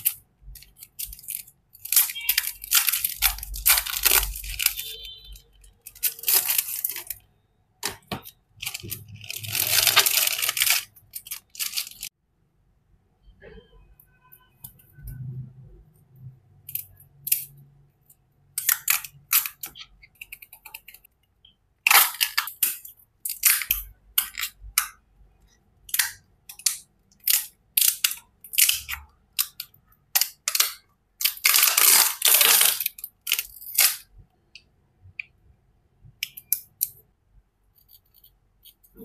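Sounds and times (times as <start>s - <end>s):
plastic crinkling and crackling: 0.0s - 12.2s, 25.9s - 34.1s.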